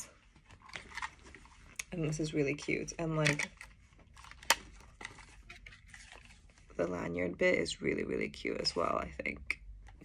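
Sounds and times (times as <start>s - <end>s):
handling rustles: 3.2s - 6.7s.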